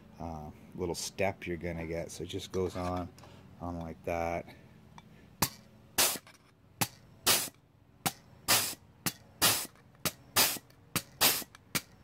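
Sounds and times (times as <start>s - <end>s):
pneumatic tool clacking: 5.4s - 12.0s
air hiss: 7.3s - 7.6s, 8.5s - 8.8s, 9.4s - 9.8s, 10.4s - 10.6s, 11.2s - 11.6s.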